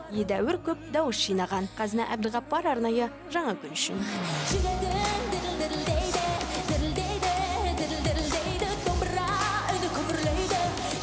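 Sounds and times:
woman singing into microphone: 0.0 - 11.0
pop backing track: 2.8 - 11.0.

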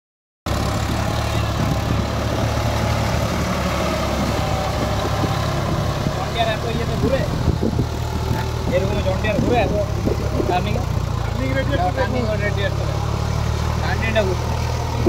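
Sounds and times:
tractor diesel engine running: 0.5 - 15.0
voices: 3.6 - 15.0.

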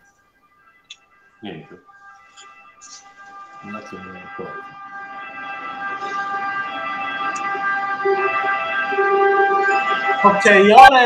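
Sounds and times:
steady multi-pitch whistling tone: 0.0 - 11.0
short lower notes: 0.8 - 10.8.

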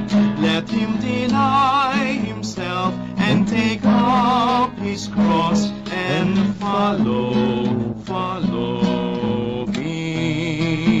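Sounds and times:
guitar accompaniment: 0.0 - 11.0
person singing a hymn: 0.0 - 11.0.

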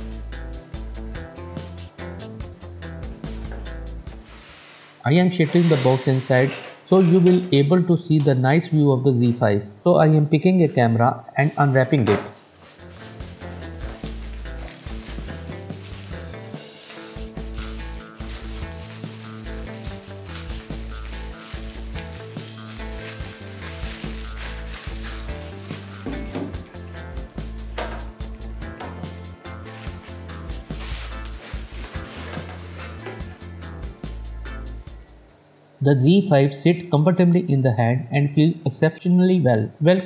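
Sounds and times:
background music: 0.0 - 7.9, 11.4 - 35.2
bubble wrap crinkling: 11.4 - 26.9, 29.6 - 33.5.

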